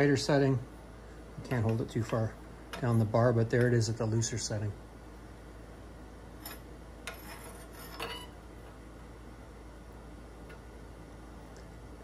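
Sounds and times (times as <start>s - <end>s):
steady low hum: 0.0s - 12.0s
steel bar clinking and scraping: 6.4s - 8.3s.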